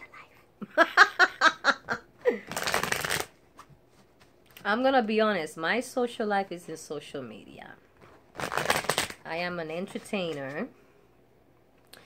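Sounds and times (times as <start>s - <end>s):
woman laughing: 0.6s - 2.5s
deck of cards shuffling: 2.4s - 4.5s, 8.0s - 9.2s.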